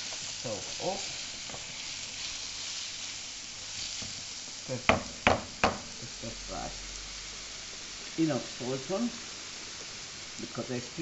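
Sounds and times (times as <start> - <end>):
cabbage sizzling in oil: 0.0 - 11.0.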